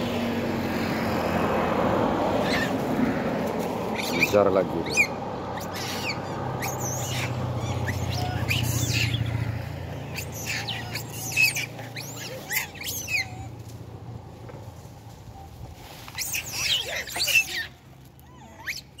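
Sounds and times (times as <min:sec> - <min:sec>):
monkeys squealing and chirping: 0:02.2 - 0:03.0, 0:03.6 - 0:13.9, 0:16.0 - 0:19.0.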